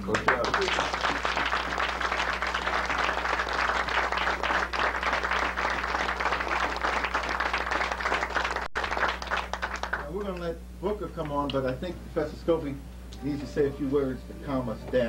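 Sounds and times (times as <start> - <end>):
audience applauding: 0.0 - 10.3
low electrical hum: 0.0 - 15.0.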